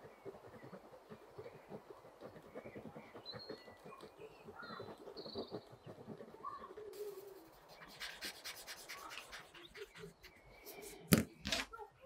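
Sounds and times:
pencil scratching on paper: 4.6 - 11.7
blending stump rubbing paper: 4.9 - 11.7.

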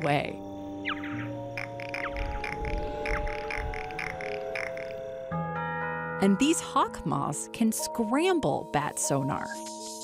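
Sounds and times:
bat echolocation chirps: 0.0 - 5.2, 8.8 - 10.0
ambient music of held tones: 0.0 - 10.0.

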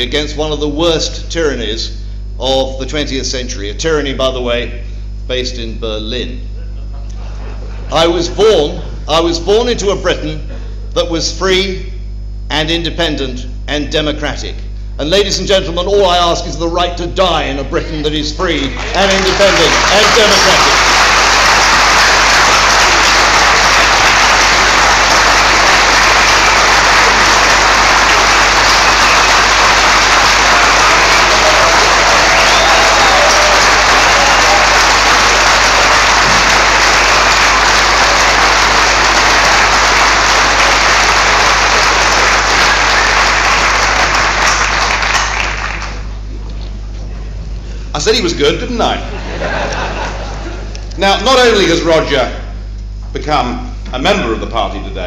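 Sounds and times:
large audience applauding: 18.6 - 46.2.

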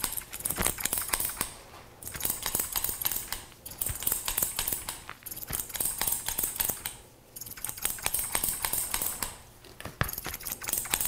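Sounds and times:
scissors snipping hair: 0.0 - 9.4, 10.0 - 11.0.

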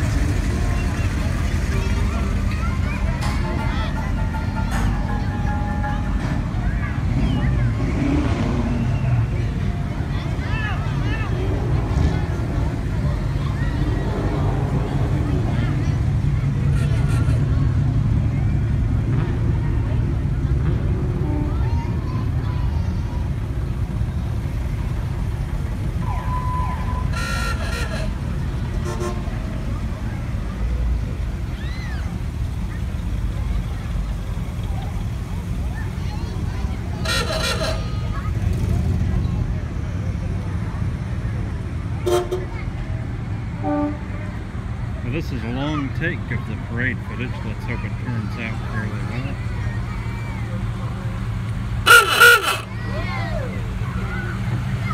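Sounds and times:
car engines idling: 0.0 - 54.9
car horn toots: 26.3 - 29.3, 37.0 - 38.1, 42.0 - 42.5, 51.8 - 52.7.

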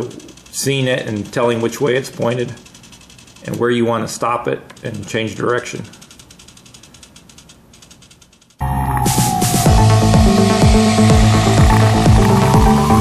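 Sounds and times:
servo gears ticking: 0.0 - 8.6, 9.5 - 13.0
background music with steady beat: 8.6 - 13.0.

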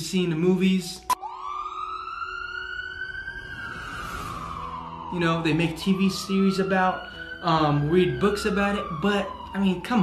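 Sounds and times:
siren wailing: 1.1 - 10.0.

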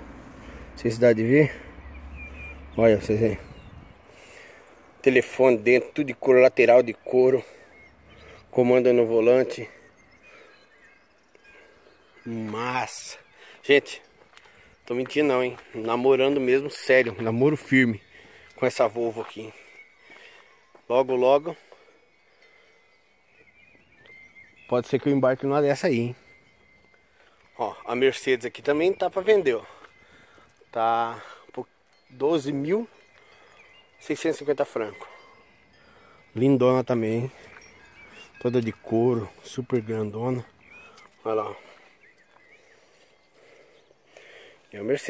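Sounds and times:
faint chirps: 0.0 - 45.0
thin steady high tone: 5.2 - 45.0.

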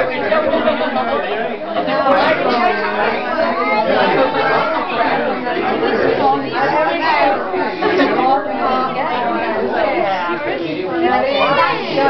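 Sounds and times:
indistinct party chatter: 0.0 - 12.0.

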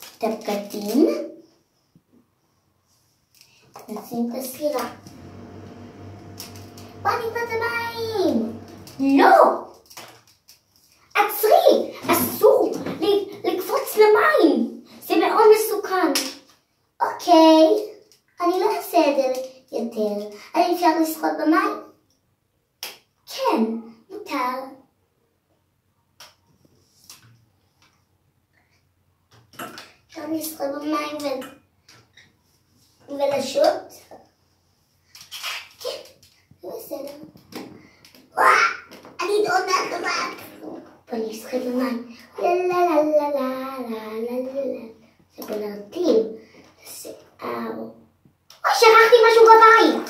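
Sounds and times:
child speaking sing-song: 7.0 - 9.5.

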